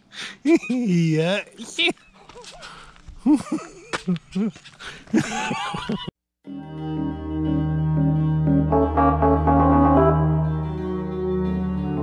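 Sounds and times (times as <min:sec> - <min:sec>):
person laughing: 0:00.5 - 0:01.0, 0:02.0 - 0:06.1.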